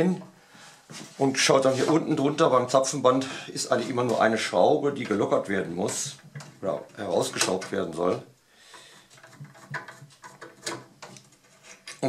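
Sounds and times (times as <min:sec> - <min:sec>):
screwdriver scraping and clicking: 0:09.1 - 0:12.0.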